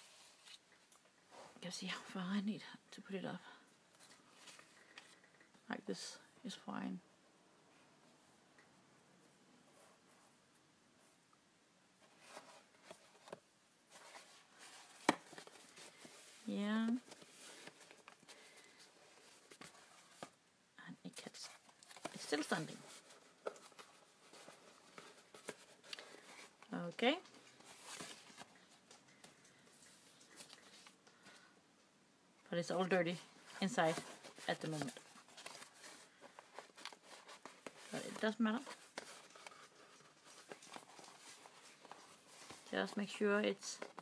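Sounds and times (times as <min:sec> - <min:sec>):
paper and craft materials handled: 0:12.0 - 0:20.4, 0:21.1 - 0:31.4, 0:32.7 - 0:44.0.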